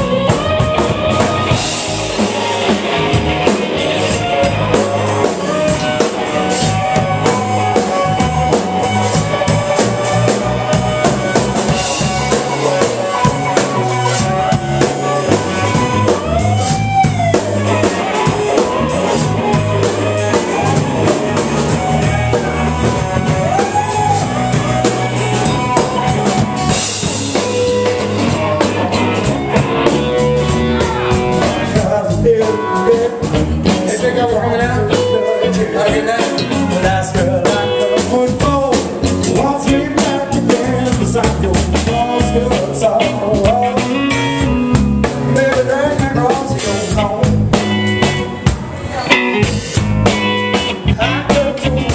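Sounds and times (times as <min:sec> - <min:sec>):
electric guitar solo: 0:00.0 - 0:38.3, 0:46.2 - 0:51.9
bass guitar: 0:00.0 - 0:51.9
drum kit: 0:00.0 - 0:51.9.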